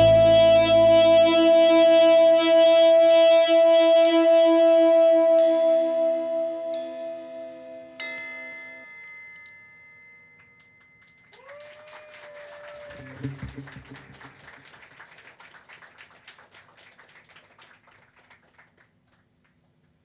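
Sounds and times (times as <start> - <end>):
electric guitar chord ringing: 0.0 - 3.4.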